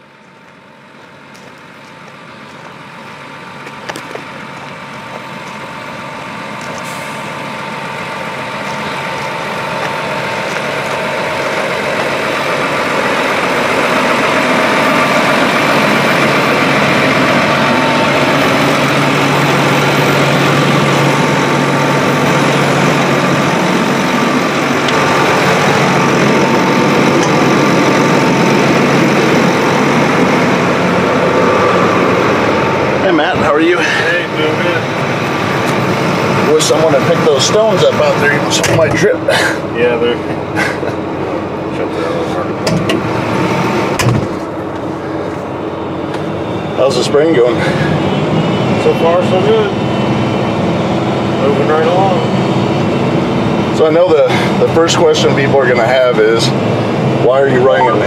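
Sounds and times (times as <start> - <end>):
high whine: 0.0 - 58.0
sprayer engine drone: 0.0 - 58.0.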